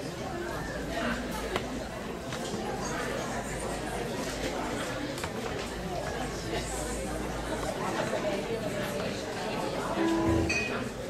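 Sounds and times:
indistinct voices chattering: 0.0 - 11.0.

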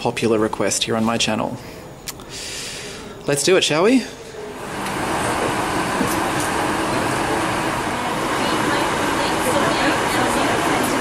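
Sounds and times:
air conditioning rushing: 0.0 - 11.0.

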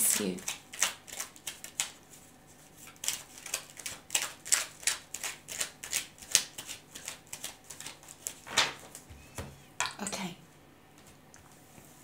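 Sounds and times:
cards being shuffled: 0.4 - 2.0, 2.6 - 9.1.

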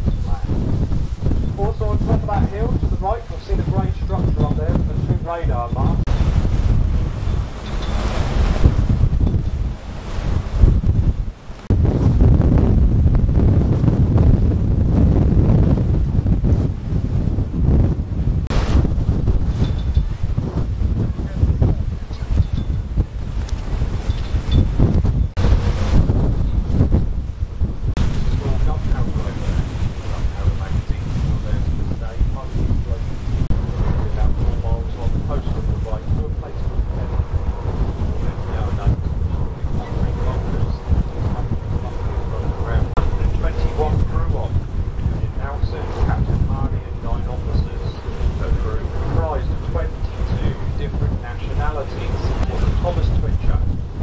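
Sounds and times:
water rushing from boat wake: 0.0 - 54.0
wind buffeting microphone: 0.0 - 54.0.

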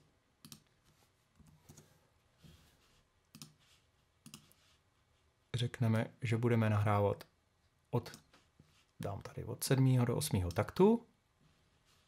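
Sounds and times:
computer mouse and keyboard clicks: 3.3 - 3.6, 4.2 - 4.6.

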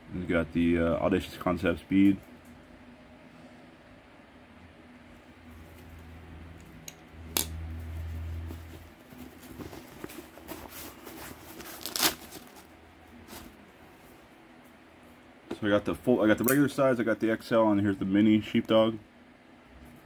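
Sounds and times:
low rumble of handling: 5.0 - 14.8.

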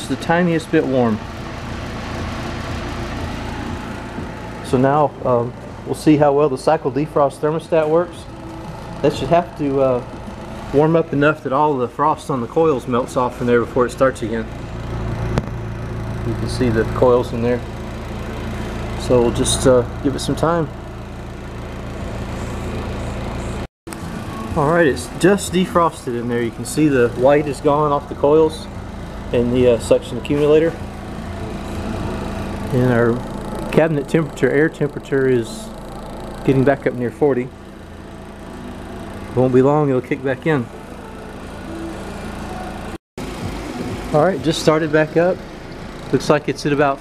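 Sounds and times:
low mechanical hum: 0.0 - 47.0.

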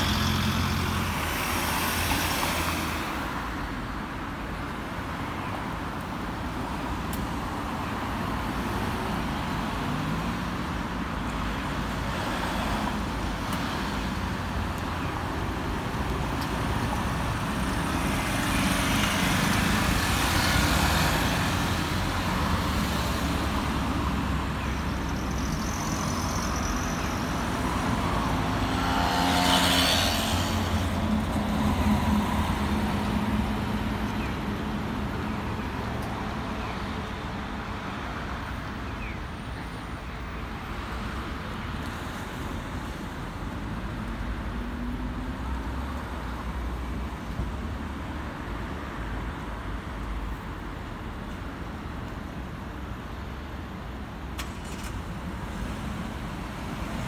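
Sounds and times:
cars driving past: 15.5 - 36.4.

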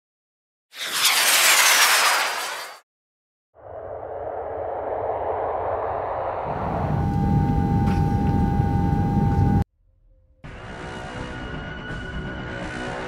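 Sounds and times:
rumbling whoosh: 3.6 - 8.7
steady high tone: 3.6 - 9.6.

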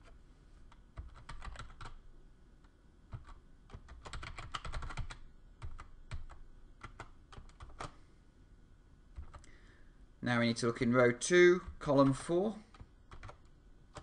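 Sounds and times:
computer keyboard typing: 0.0 - 2.0, 3.1 - 8.0, 9.2 - 9.6, 11.6 - 14.0.

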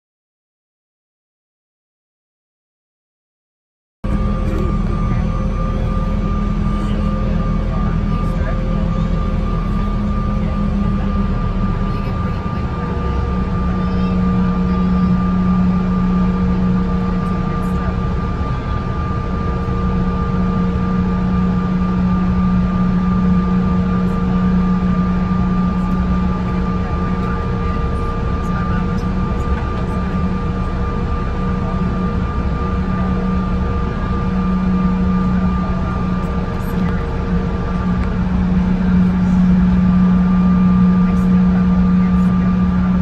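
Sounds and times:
airliner engines droning: 4.0 - 43.0
high engine whine: 4.0 - 43.0.

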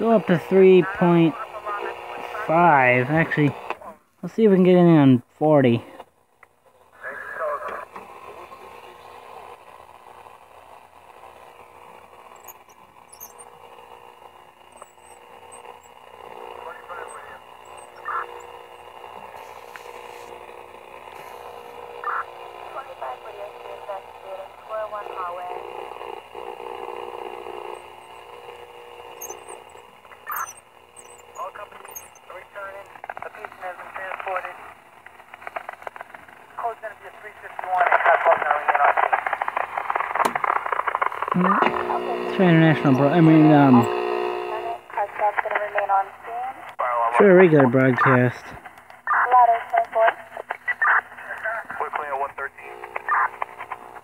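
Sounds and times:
faint garbled radio voices: 0.0 - 54.0
radio static hiss: 0.0 - 54.0.

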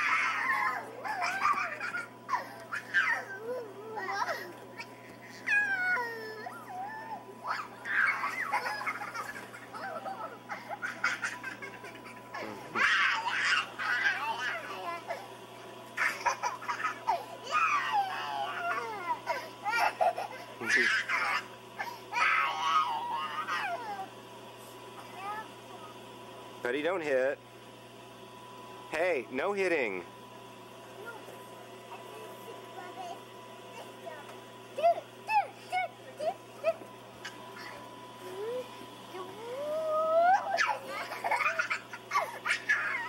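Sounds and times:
toddler crying: 0.0 - 15.3, 16.0 - 24.1, 39.4 - 43.0
children laughing and squealing: 0.0 - 15.4, 16.0 - 24.2, 34.8 - 43.0.

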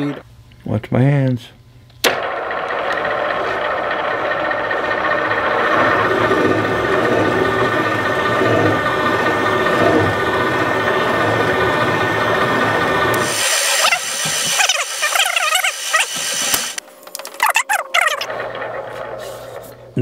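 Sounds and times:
machining hum with faint whine: 0.0 - 20.0
high wavering mechanical sound: 2.2 - 20.0.

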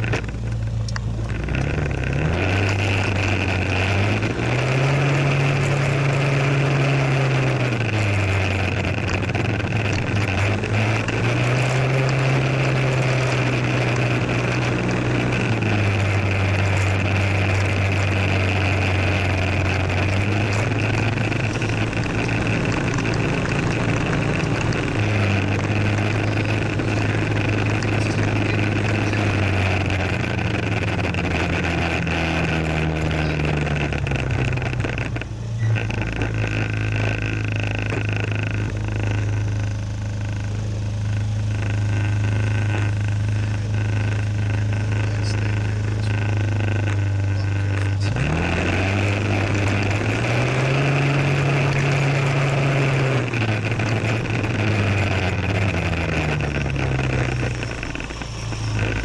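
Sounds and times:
rushing wind and road noise: 0.0 - 39.6
scooter engine humming: 0.0 - 59.0.

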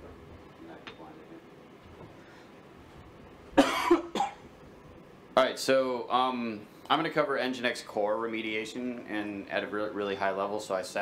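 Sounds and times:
man coughing: 3.6 - 4.5.

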